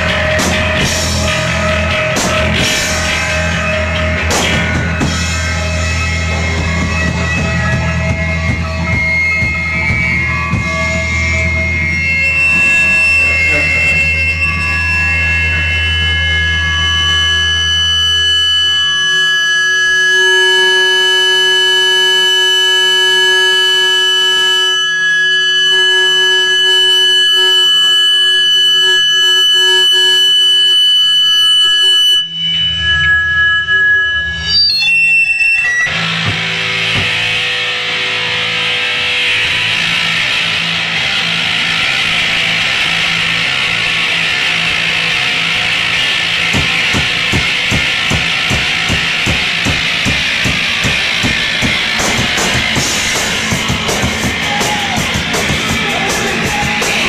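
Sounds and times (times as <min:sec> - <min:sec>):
guitars strummed hard: 0:00.0 - 0:19.5, 0:34.9 - 0:57.0
electric guitar drone: 0:00.0 - 0:57.0.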